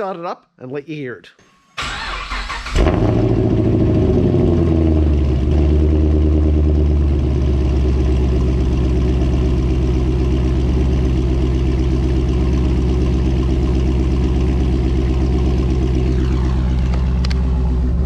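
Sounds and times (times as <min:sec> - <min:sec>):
car engine idling: 0:01.8 - 0:18.0.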